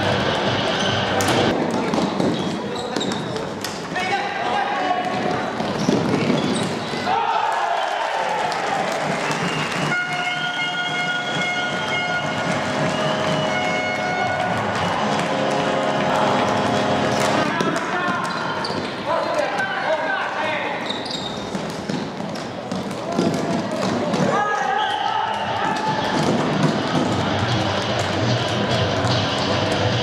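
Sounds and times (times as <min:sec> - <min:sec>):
voices in a hall: 0:00.0 - 0:30.0.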